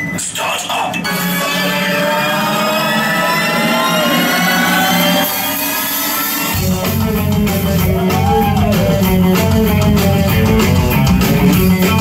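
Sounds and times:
live rock band: 0:01.0 - 0:12.0
bass and drums: 0:03.2 - 0:12.0.

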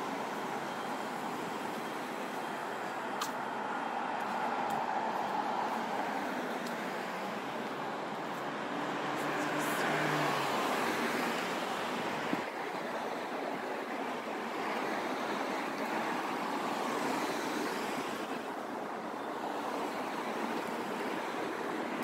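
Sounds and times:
cars passing: 0:00.0 - 0:22.0.

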